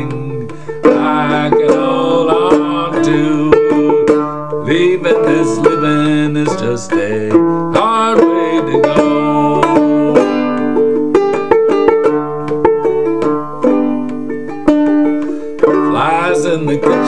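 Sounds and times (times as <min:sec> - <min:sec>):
man singing: 0:00.0 - 0:10.4, 0:15.7 - 0:17.0
banjo plucked notes: 0:00.0 - 0:17.0.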